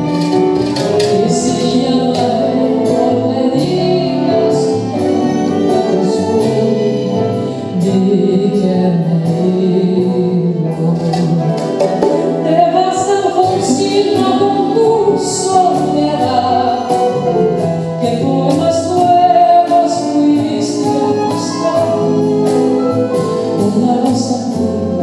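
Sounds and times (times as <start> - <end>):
acoustic guitars: 0.0 - 25.0
double bass: 0.0 - 25.0
woman singing: 0.0 - 25.0.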